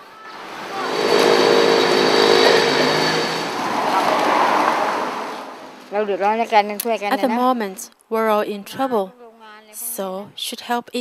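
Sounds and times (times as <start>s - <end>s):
vehicle passing by: 0.0s - 6.3s.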